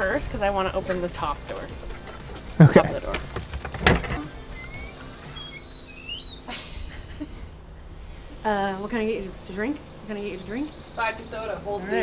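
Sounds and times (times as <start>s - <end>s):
background music: 0.0s - 6.4s
wooden door unlatched and opened: 3.1s - 4.8s.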